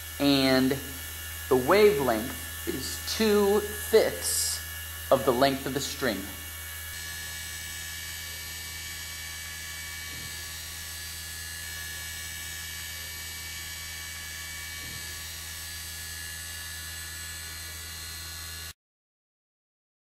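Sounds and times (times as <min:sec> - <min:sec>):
low electrical hum: 0:00.0 - 0:18.3.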